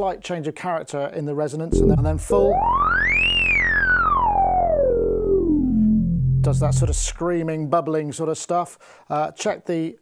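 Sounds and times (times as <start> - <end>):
low sawtooth synth note: 1.7 - 7.2
resonant synth filter sweep: 1.7 - 7.3.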